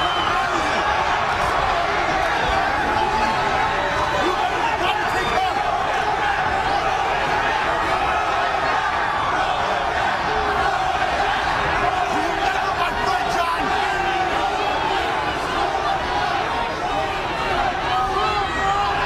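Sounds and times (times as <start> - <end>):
crowd cheering and shouting: 0.0 - 19.0.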